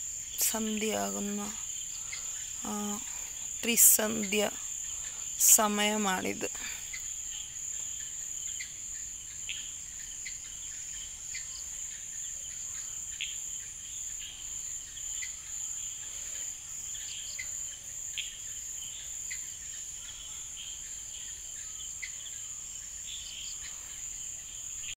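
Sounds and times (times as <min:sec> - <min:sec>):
insect chirps: 0:00.0 - 0:24.9
insect drone: 0:00.0 - 0:24.9.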